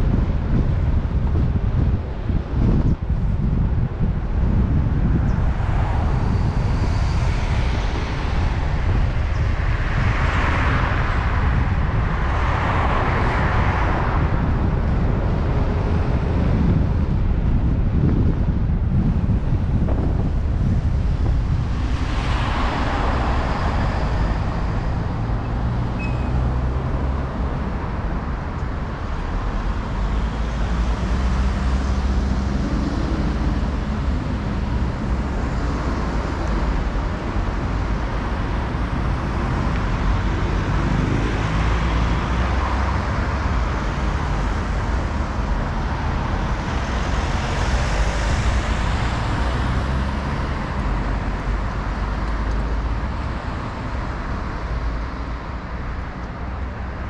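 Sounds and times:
wind rumble on microphone: 0.0s - 57.0s
cars driving past: 19.2s - 57.0s.

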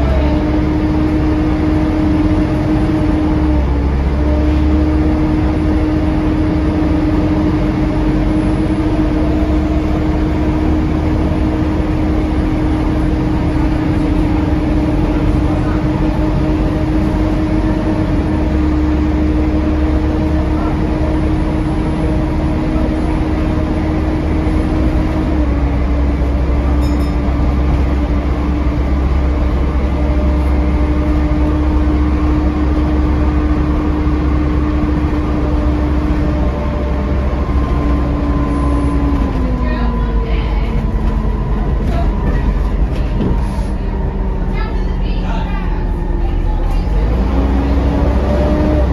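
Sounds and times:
bus engine and fans droning: 0.0s - 48.9s
road rumble: 0.0s - 48.9s.

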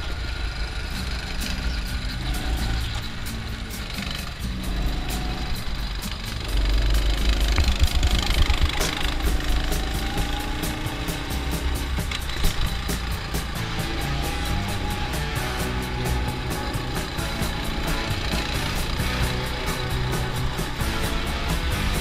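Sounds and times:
background music with steady beat: 0.0s - 22.0s
go-kart engine running: 0.0s - 22.0s.

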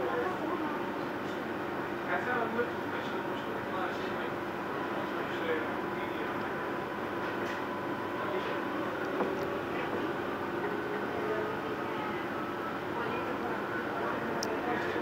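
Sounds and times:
train running noise: 0.0s - 15.0s.

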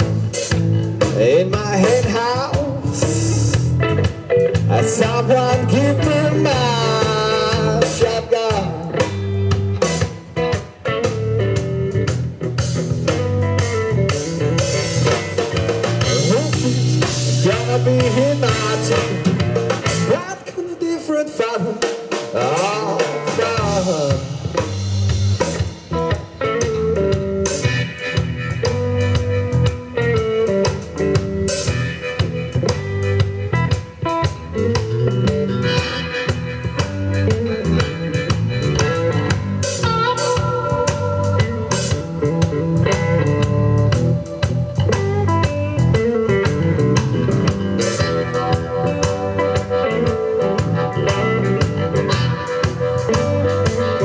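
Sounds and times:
bass guitar: 0.0s - 54.0s
drum kit beat: 0.0s - 54.0s
electric guitar: 0.0s - 54.0s.

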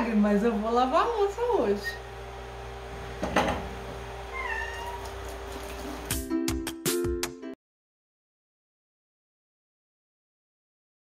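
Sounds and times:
dish knocking in sink: 3.2s - 3.8s
cat meowing: 4.3s - 5.4s.

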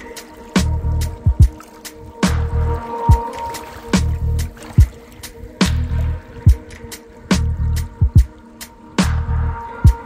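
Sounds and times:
chill electronic music: 0.0s - 10.0s
deep kick drum: 0.6s - 1.6s, 7.4s - 8.3s.

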